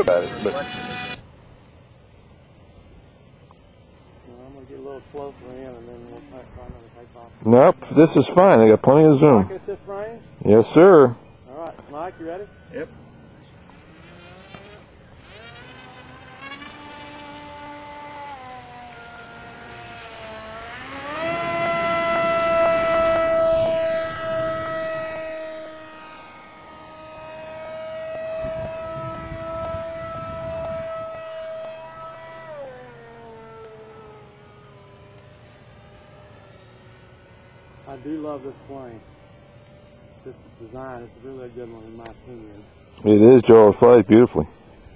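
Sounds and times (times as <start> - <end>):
electric motor and propeller whining: 0.0 - 44.9.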